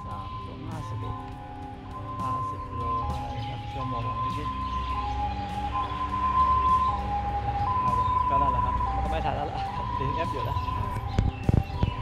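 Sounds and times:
two-tone emergency siren: 0.0 - 12.0.

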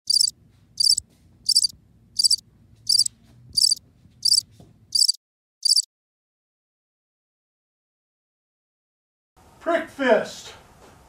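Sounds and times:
insect chirping: 0.1 - 4.4, 5.0 - 5.9.

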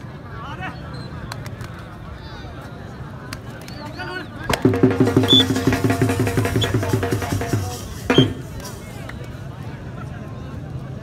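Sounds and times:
drum beaten fast: 4.5 - 8.8.

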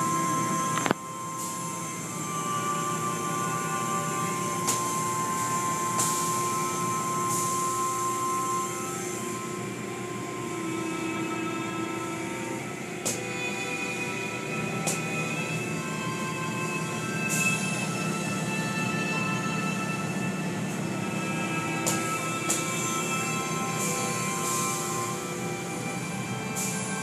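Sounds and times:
music of long held notes: 0.0 - 27.0.

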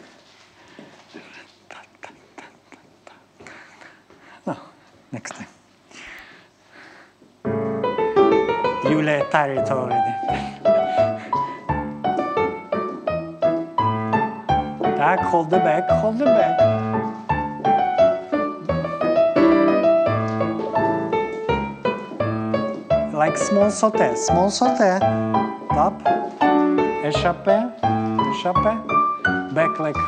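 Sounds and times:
faint soft rustles: 0.0 - 7.8
piano chords: 7.4 - 30.0.

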